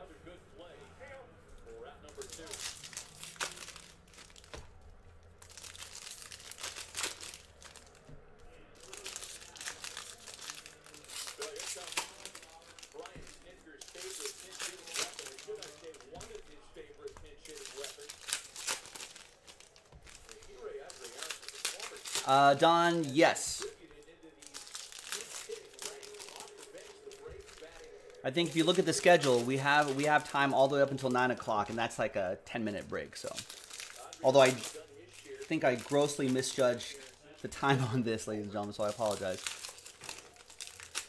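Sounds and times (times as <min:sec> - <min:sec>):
foil wrappers tearing and crinkling: 0:02.0 - 0:32.0, 0:33.2 - 0:41.0.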